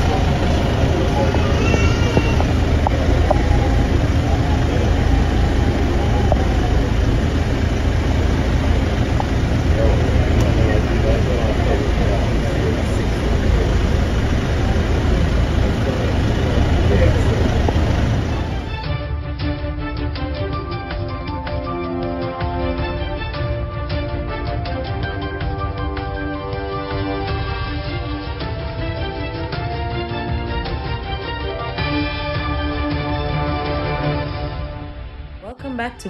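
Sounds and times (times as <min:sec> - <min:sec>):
people talking: 0:00.0 - 0:08.3, 0:09.0 - 0:18.6, 0:35.4 - 0:36.0
vehicle engine idling: 0:00.0 - 0:18.8.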